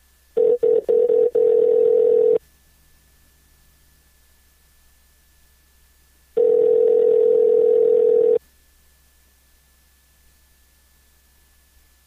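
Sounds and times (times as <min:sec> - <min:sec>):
telephone ringback tone: 0:00.4 - 0:02.4, 0:06.4 - 0:08.4.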